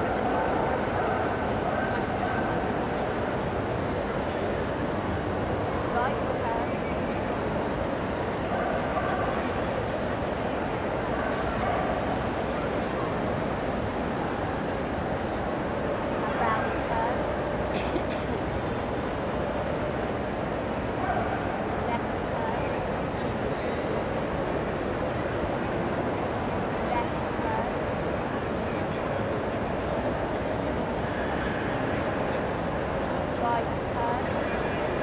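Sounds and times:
indoor crowd murmur: 0.0s - 35.0s.

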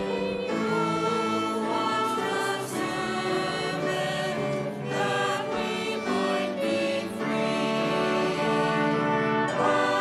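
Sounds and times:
choir singing a hymn: 0.0s - 10.0s
piano: 0.0s - 10.0s.

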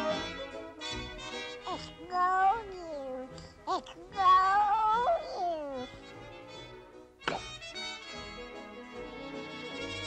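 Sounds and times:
orchestral cartoon music: 0.0s - 10.0s.

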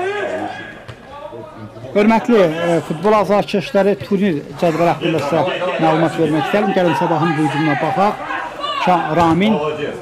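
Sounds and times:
man talking: 1.3s - 8.2s, 8.8s - 10.0s.

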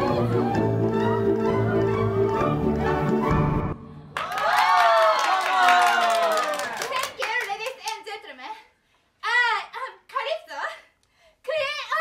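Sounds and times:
crowd whooping and cheering: 4.1s - 6.9s
people clapping: 4.1s - 8.2s.

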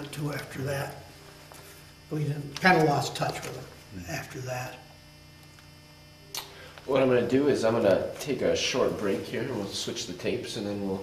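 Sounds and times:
man speaking: 0.0s - 1.1s, 2.1s - 4.9s, 6.9s - 11.0s
electrical mains hum: 0.0s - 11.0s
sharp click: 6.3s - 6.6s.

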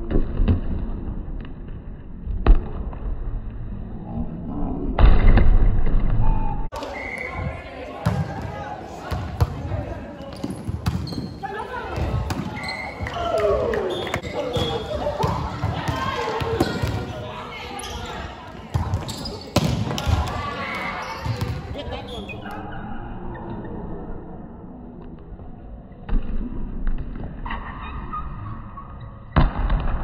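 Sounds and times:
players calling: 6.7s - 22.6s
volleyball struck and hitting floor: 18.7s - 20.4s, 29.4s - 30.0s.

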